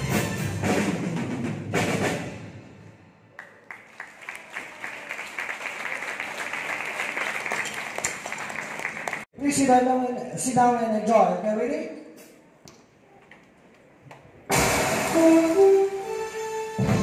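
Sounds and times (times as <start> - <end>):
audience applause: 3.4 - 9.3
drum hit with cymbals ringing: 14.5 - 15.6.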